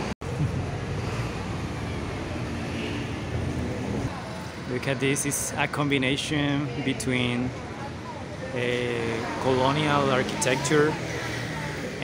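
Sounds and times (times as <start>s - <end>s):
traffic rumble: 0.0s - 12.0s.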